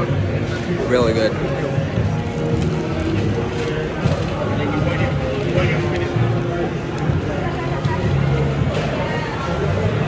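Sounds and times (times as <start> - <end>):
background music: 0.0 - 10.0
chatter of people: 0.0 - 10.0.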